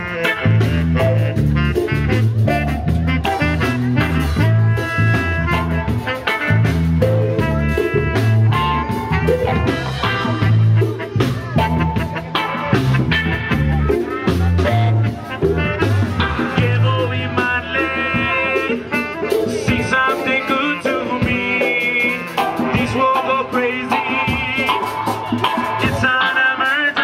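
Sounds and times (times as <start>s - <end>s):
drums: 0.0s - 27.0s
electric bass: 0.0s - 27.0s
electric guitar: 0.0s - 27.0s
horn section: 0.0s - 27.0s.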